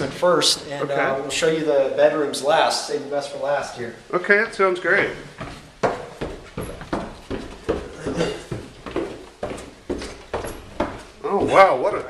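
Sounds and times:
footsteps walking down stairs: 4.8s - 12.0s.

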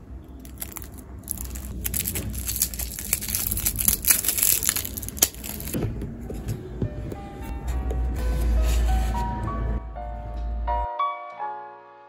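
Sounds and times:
plastic wrapper crinkling: 0.4s - 5.8s.

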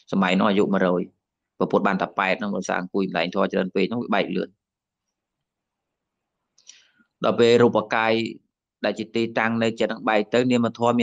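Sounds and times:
man talking: 0.0s - 4.5s, 7.2s - 11.0s.

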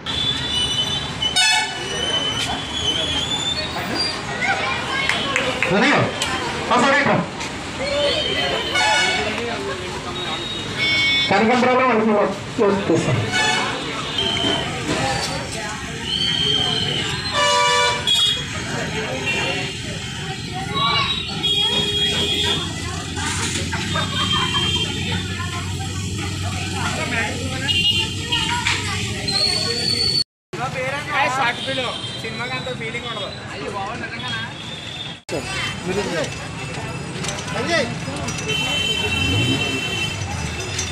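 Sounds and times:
vehicle horn tooting: 0.0s - 2.0s, 8.0s - 9.5s, 10.1s - 11.6s, 13.2s - 14.8s, 16.7s - 18.5s, 20.9s - 22.8s, 23.9s - 25.2s, 27.6s - 28.6s, 38.4s - 40.3s
street traffic: 0.0s - 40.9s.

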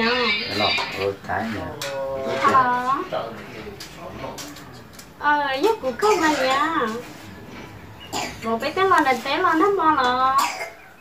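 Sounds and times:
woman speaking: 2.3s - 3.4s, 5.2s - 7.1s, 8.4s - 10.7s.

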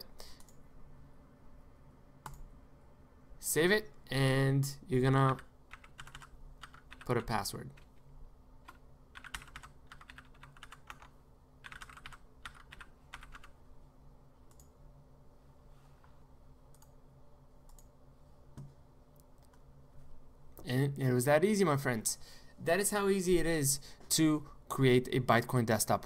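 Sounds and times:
low steady hum: 0.0s - 26.0s
computer keyboard typing: 5.1s - 8.0s, 8.6s - 13.6s.

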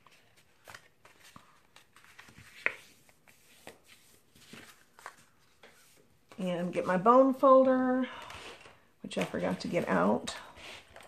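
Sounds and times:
cardstock being folded: 0.0s - 7.0s.

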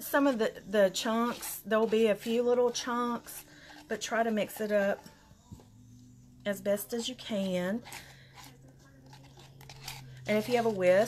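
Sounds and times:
brush stirring gritty paint: 0.0s - 11.0s.

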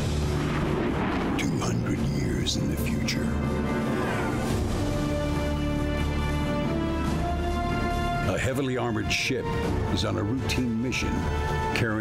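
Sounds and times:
rumbling explosion-like effects: 0.0s - 5.4s
heavy low drone: 0.0s - 8.1s.

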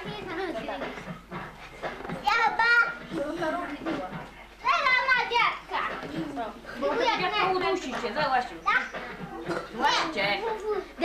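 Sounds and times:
child talking: 0.0s - 1.1s, 2.2s - 7.8s, 8.6s - 11.0s.

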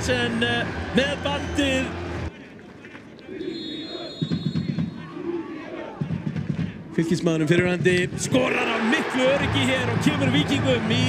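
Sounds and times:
stadium crowd hum: 0.0s - 11.0s
faint voices and shouts: 4.8s - 7.6s.

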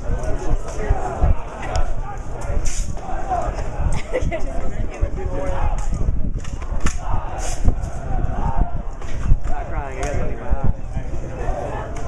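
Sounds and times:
wind rumbling on microphone: 0.0s - 11.6s
people talking indistinctly: 0.0s - 12.0s.

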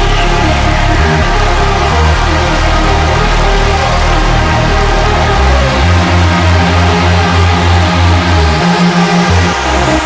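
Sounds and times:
dark electronic music with pulsing bass: 0.0s - 10.0s.

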